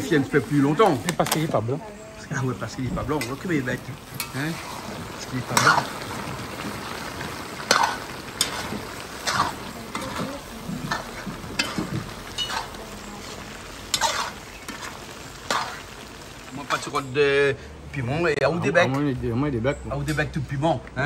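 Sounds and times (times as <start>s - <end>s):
food sizzling: 0.0s - 19.4s
metal spoon scraping a pot: 13.9s - 14.9s.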